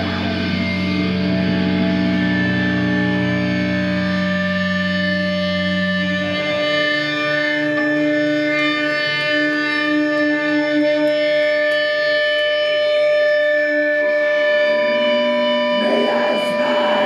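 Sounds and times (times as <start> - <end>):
distorted electric guitars droning: 0.0 - 17.0.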